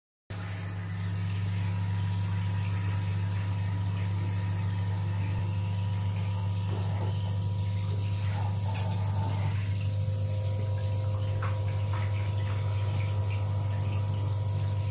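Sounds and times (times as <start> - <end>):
low electric motor hum: 0.3 - 14.9
water hissing in bathtub: 0.4 - 14.9.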